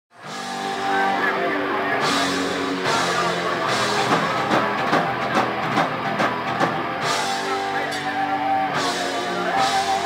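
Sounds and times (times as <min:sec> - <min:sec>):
heavy metal band playing: 0:00.2 - 0:10.0.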